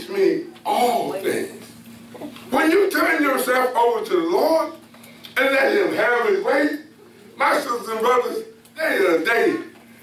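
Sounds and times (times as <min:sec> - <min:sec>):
man preaching: 0:00.0 - 0:01.4, 0:02.5 - 0:09.8.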